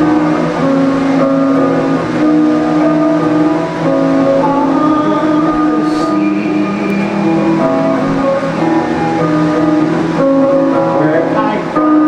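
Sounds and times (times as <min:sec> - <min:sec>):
electric guitar through amplifier: 0:00.0 - 0:12.0.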